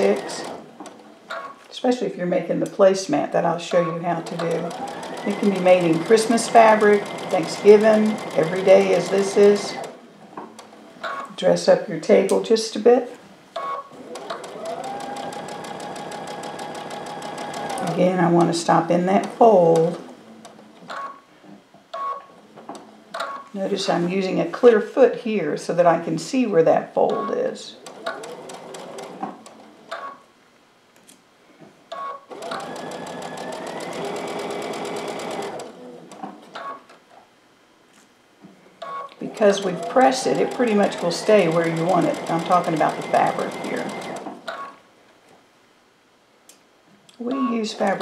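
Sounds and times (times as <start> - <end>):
electric sewing machine stitching: 0.0 - 1.1, 4.1 - 10.0, 14.0 - 20.1, 27.8 - 29.7, 32.3 - 36.2, 39.3 - 44.6.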